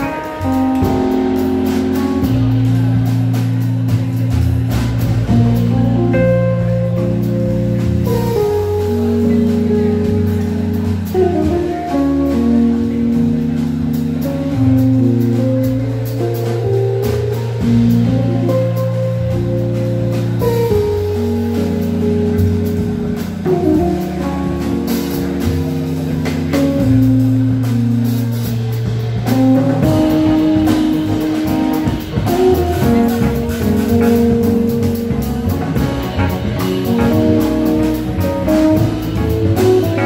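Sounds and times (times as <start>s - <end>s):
double bass: 0.0s - 40.0s
electric keyboard chords: 0.0s - 40.0s
drum kit cymbal strokes: 6.6s - 40.0s.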